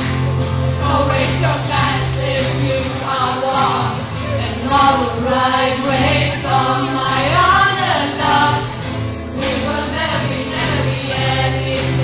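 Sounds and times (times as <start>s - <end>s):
group of people singing: 0.0s - 12.0s
strummed acoustic guitar: 0.0s - 12.0s.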